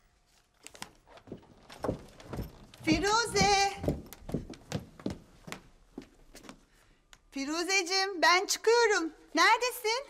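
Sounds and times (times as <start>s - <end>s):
heeled footsteps on stairs: 1.2s - 6.6s.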